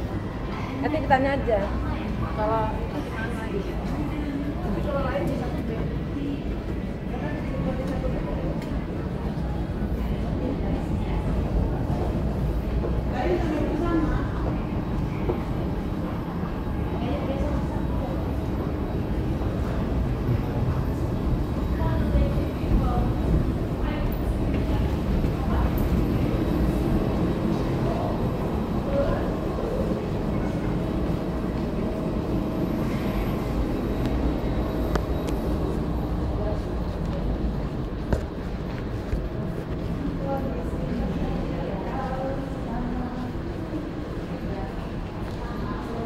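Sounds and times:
faint voices: 0.0s - 46.0s.

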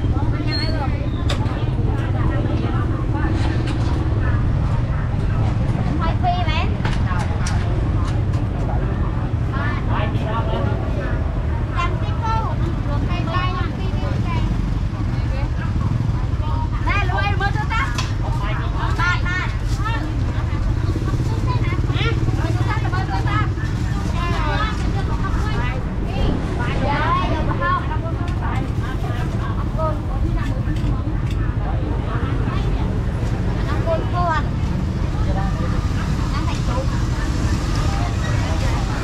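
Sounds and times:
motorbike and road traffic rumble: 0.0s - 39.0s
people talking: 0.0s - 39.0s.

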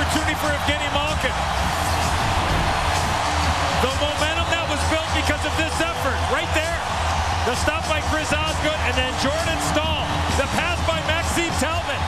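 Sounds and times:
crowd cheering: 0.0s - 12.0s
music over sound system: 0.0s - 12.0s.

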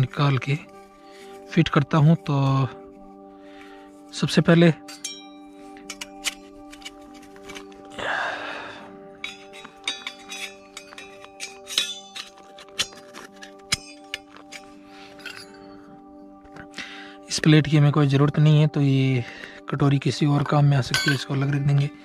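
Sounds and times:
background music: 0.0s - 22.0s
metal parts clinking: 4.8s - 7.9s, 9.2s - 15.8s, 21.0s - 21.6s.

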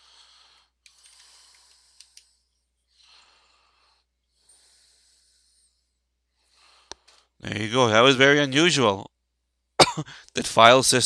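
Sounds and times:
faint breathing: 0.0s - 7.4s, 10.0s - 10.4s.

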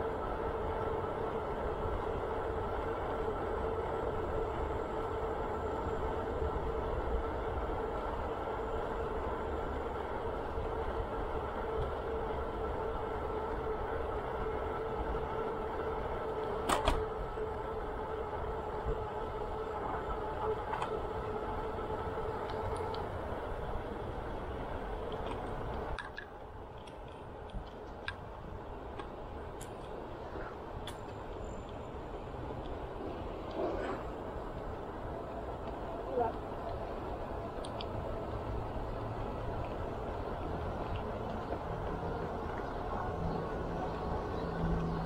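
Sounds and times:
bicycle rolling on pavement: 0.0s - 45.0s.

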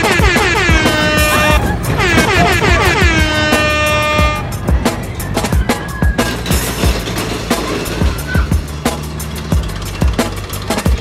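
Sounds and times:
air horn blaring: 0.0s - 4.6s
music with steady beat: 0.0s - 11.0s.

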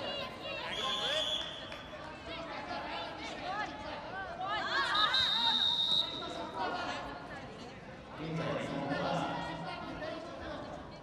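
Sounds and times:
referee's whistle blasts: 0.7s - 1.7s, 4.9s - 6.3s
people shouting in a hall: 2.8s - 7.0s.

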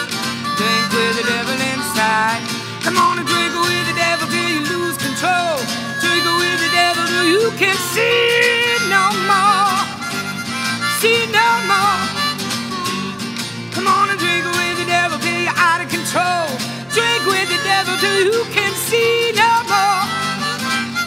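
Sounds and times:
blues harmonica solo: 0.0s - 21.0s
strummed acoustic guitar: 0.0s - 21.0s.

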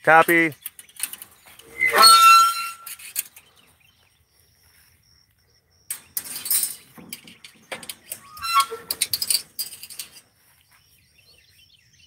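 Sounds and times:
brief high-pitched squeak: 1.6s - 3.3s, 8.1s - 9.3s
footsteps through dry grass: 10.3s - 11.7s.

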